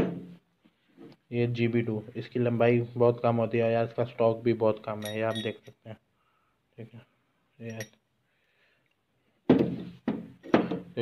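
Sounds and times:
metal parts thunking on table: 5.0s - 5.7s.

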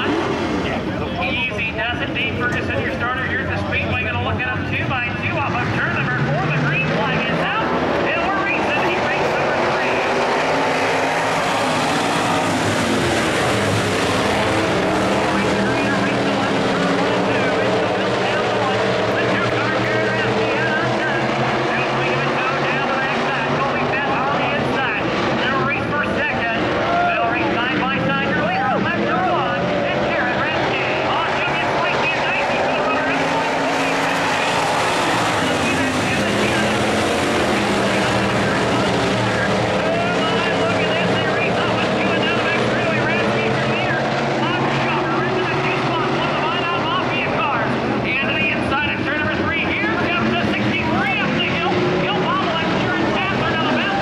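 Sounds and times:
race car engines: 0.0s - 54.0s.

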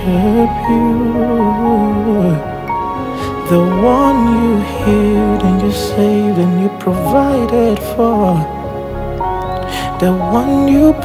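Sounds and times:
man singing: 0.0s - 8.8s, 9.5s - 11.0s
keyboard pad chords: 0.0s - 11.0s.

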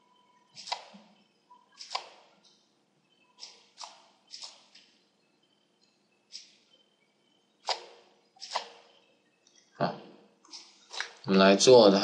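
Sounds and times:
computer mouse clicks: 0.6s - 1.0s, 1.7s - 2.6s, 7.6s - 8.9s.

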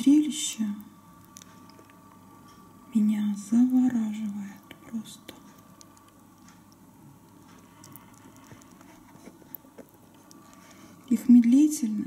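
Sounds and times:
snails chomping with wet clicks: 1.2s - 2.2s, 3.4s - 10.8s.

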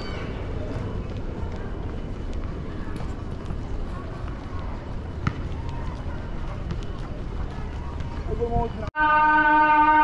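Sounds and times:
low city rumble: 0.0s - 10.0s.

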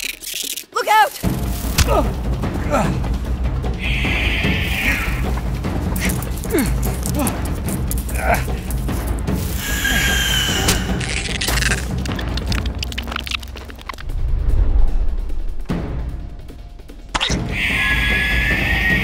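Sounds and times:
dramatic film score: 0.0s - 19.0s.

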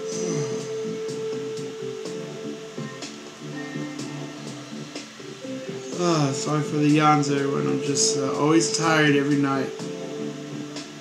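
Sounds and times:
man yawning: 0.0s - 0.8s
background music steady note: 0.0s - 11.0s.

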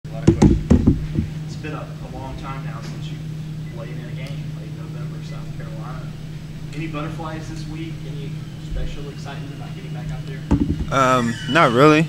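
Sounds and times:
low hum: 0.1s - 11.9s
heavy knocks: 0.2s - 1.4s, 10.5s - 11.0s
man speaking: 1.6s - 12.0s.

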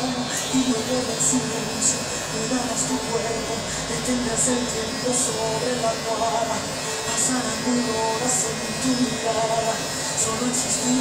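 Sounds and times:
background music with singing: 0.0s - 11.0s
electric hair clipper buzzing: 0.0s - 11.0s.

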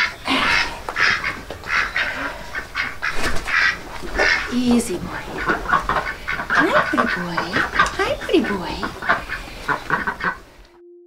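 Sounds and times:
ducks quacking: 0.0s - 10.6s.

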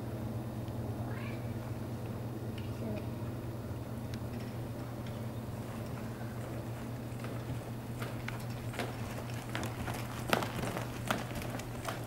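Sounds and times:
steady low hum: 0.0s - 12.0s
hoof steps in soft footing: 5.2s - 12.0s.

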